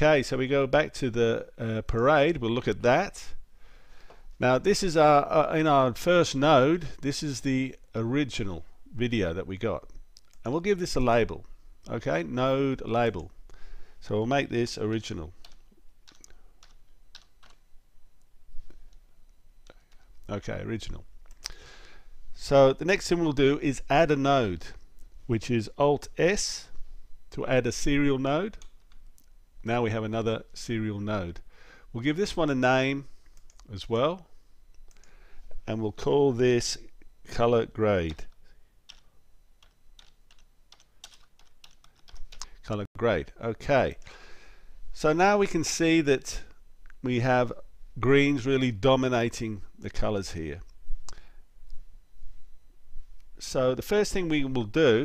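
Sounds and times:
computer keyboard keystrokes: 15.4s - 17.6s, 38.9s - 42.5s.

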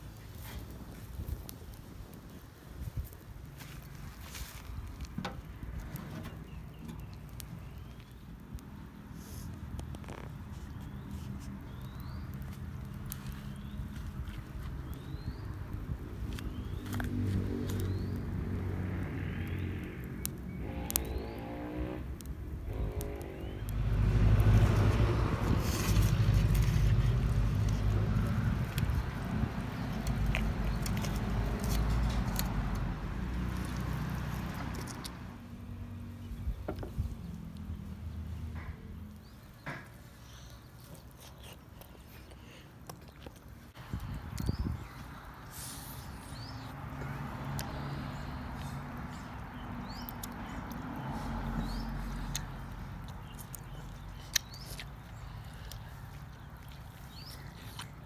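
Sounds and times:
low engine rumble: 0.0s - 58.0s
bird rising chirp: 19.6s - 22.1s, 22.7s - 24.1s.

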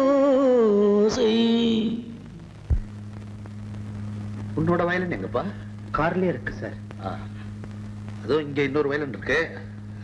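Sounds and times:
low electrical hum with hiss: 0.0s - 10.0s.

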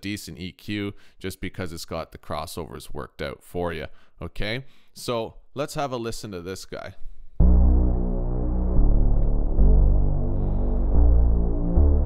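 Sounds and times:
synthesizer sub bass notes: 7.4s - 12.0s.

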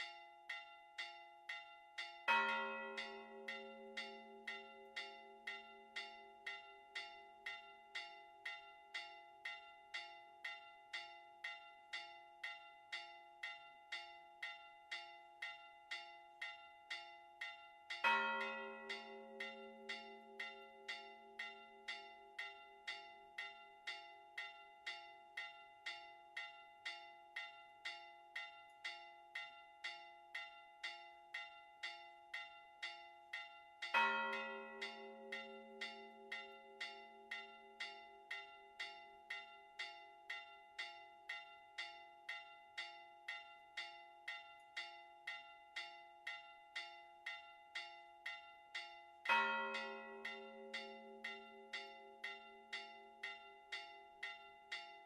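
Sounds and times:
small high bell striking: 0.0s - 55.0s
church bells ringing: 2.3s - 5.9s, 18.0s - 21.9s, 33.9s - 36.8s, 49.3s - 53.1s
deep bell striking: 2.3s - 6.7s, 18.0s - 21.9s, 34.0s - 37.8s, 49.3s - 53.1s.

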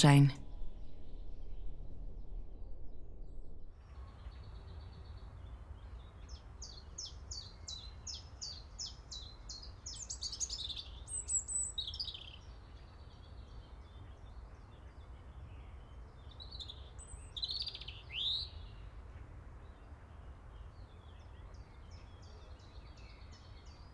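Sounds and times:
faint low rumble: 0.0s - 6.4s
birds singing: 3.8s - 23.9s.

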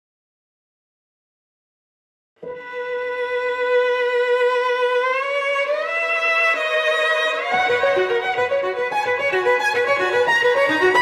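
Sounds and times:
solo violin bowed note: 2.4s - 11.0s.

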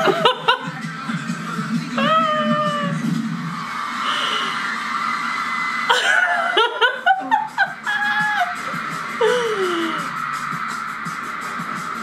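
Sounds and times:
pop music: 0.0s - 12.0s
woman squealing: 2.0s - 3.0s, 7.8s - 10.1s
giggles: 5.9s - 10.1s.

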